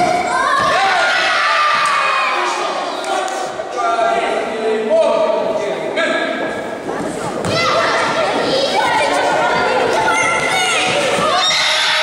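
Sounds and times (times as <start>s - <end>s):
children shouting and yelling: 0.0s - 3.1s, 7.4s - 12.0s.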